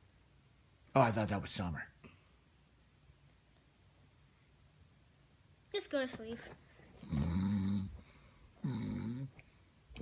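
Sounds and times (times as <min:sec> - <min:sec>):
man making mock snores: 0:07.0 - 0:08.0, 0:08.6 - 0:09.3.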